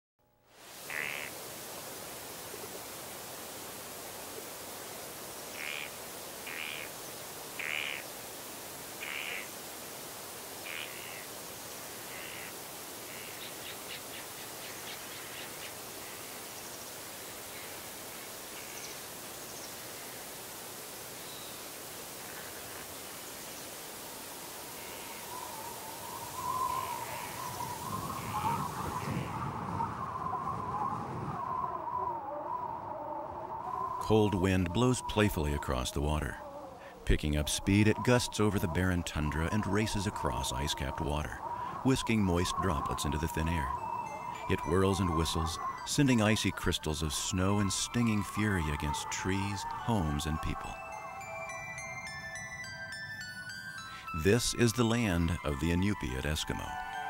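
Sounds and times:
windy hiss: 0.5s - 57.0s
short bird calls: 5.5s - 6.9s, 7.6s - 8.1s, 9.0s - 9.5s, 10.6s - 11.3s
whistling wind: 25.2s - 35.0s.

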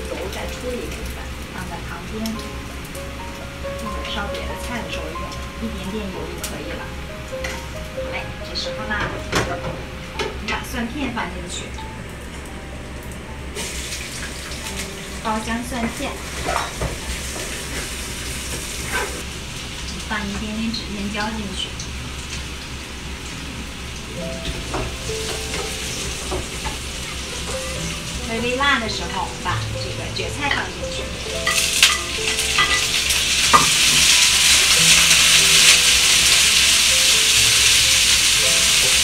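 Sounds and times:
garlic sizzling in hot oil: 0.0s - 9.0s, 13.5s - 39.0s.

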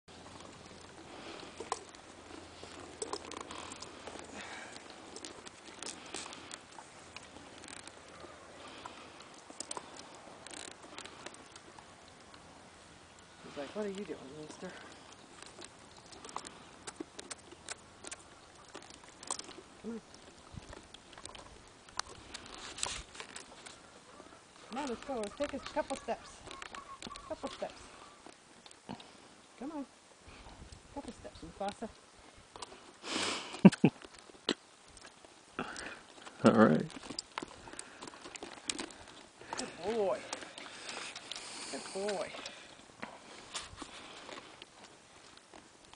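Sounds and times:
horse tack clicks: 0.3s - 8.2s, 14.9s - 23.8s, 36.0s - 45.9s
horse blowing through nostrils: 33.0s - 33.8s.

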